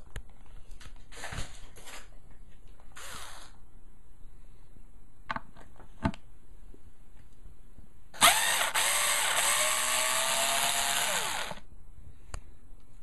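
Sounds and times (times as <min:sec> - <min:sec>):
cordless drill motor running: 0:08.2 - 0:11.6.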